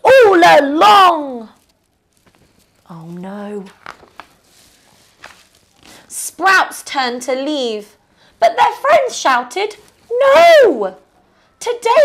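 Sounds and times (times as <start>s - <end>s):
book page turning: 1.5s - 6.2s.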